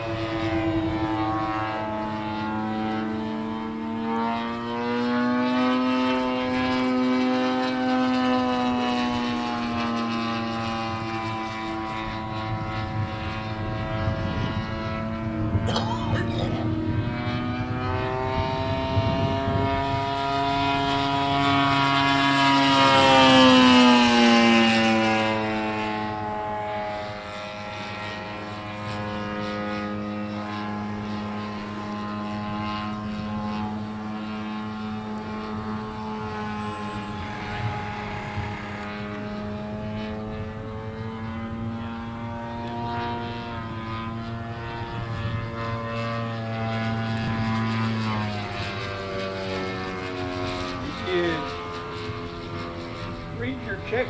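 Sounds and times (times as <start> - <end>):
model plane engine droning: 0.0 - 54.0.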